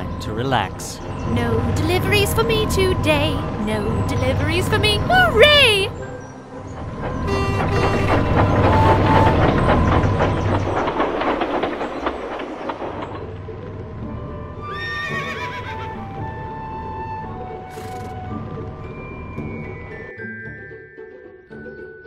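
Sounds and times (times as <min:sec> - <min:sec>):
music: 0:00.0 - 0:10.9, 0:13.1 - 0:22.0
train rumbling and rattling: 0:00.0 - 0:20.0
horse whinnying: 0:14.7 - 0:16.0, 0:17.7 - 0:18.3.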